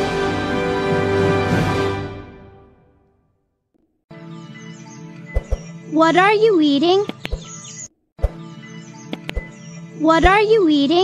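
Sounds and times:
birds chirping: 0:04.2 - 0:11.0.

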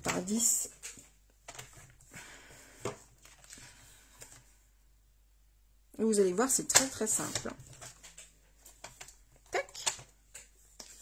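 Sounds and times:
paper rustling: 0:00.0 - 0:04.6.

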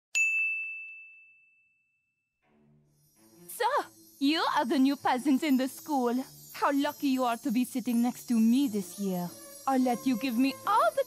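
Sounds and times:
bell-like chime ding: 0:00.1 - 0:02.3.

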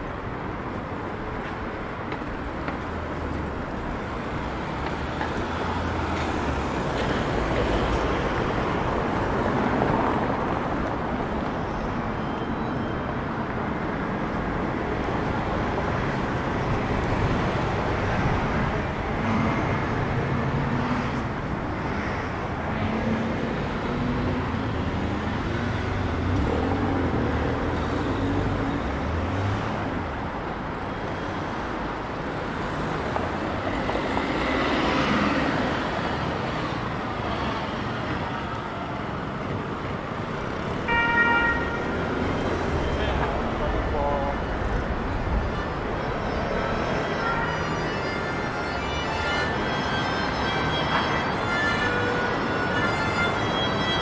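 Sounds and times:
city street traffic: 0:00.0 - 0:54.0
vehicle horn toot: 0:40.9 - 0:41.9.

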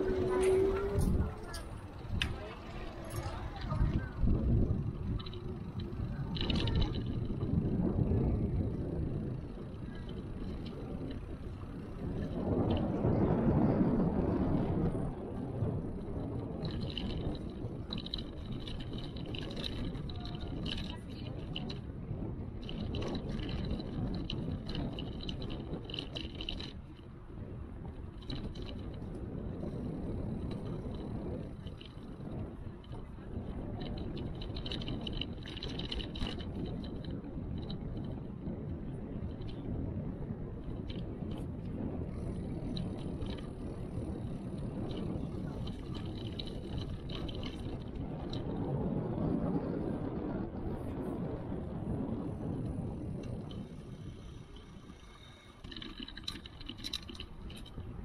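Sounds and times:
bicycle tyres rolling on pavement: 0:00.0 - 0:58.0
wind over microphone: 0:00.0 - 0:58.0.

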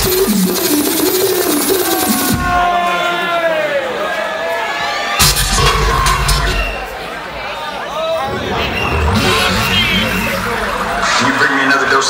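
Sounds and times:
electronic bass music: 0:00.0 - 0:02.6, 0:08.1 - 0:12.0
wobbling synth line: 0:08.1 - 0:12.0.

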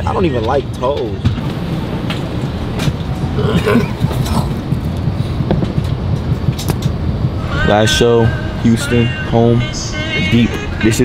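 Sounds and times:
airliner cabin rumble: 0:00.0 - 0:11.0.

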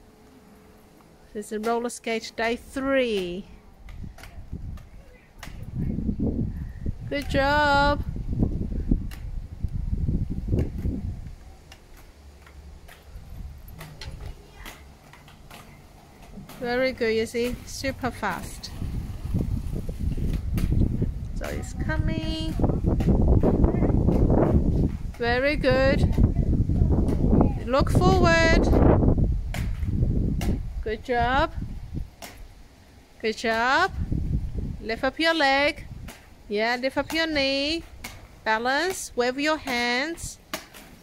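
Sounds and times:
skate wheels rolling: 0:00.0 - 0:41.0
skates clicking and tapping: 0:01.0 - 0:05.8, 0:10.5 - 0:31.1, 0:34.9 - 0:41.0.

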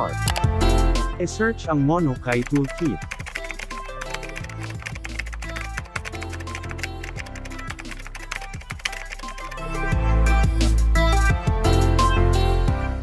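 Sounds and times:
background music: 0:00.0 - 0:13.0
keyboard typing clicks: 0:00.2 - 0:00.5, 0:02.3 - 0:09.6.

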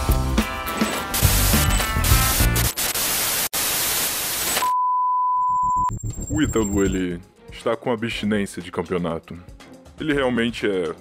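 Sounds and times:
television static hiss: 0:02.2 - 0:04.6
steady beep tone: 0:04.6 - 0:07.0.

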